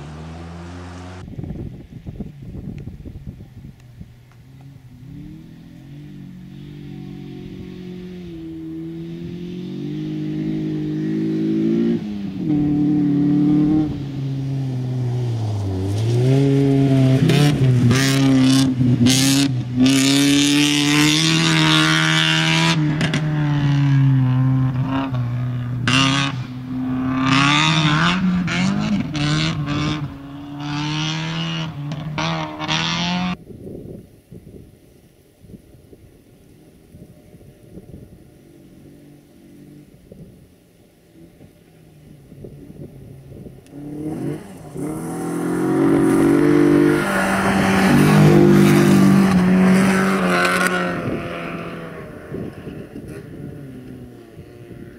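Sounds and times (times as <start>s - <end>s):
rally car engine revving past: 0.0s - 1.2s, 4.5s - 33.4s, 43.3s - 54.9s.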